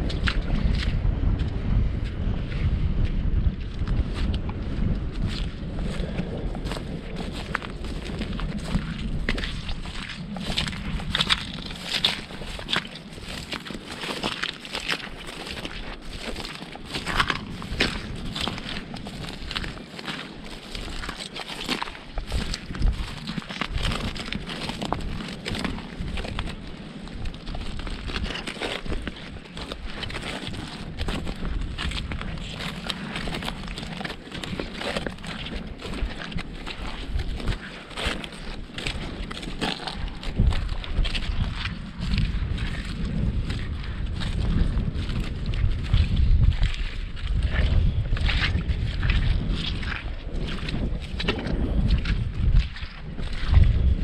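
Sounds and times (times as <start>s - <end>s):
footsteps through grass and mud: 0.0s - 54.0s
wind buffeting microphone: 0.0s - 54.0s.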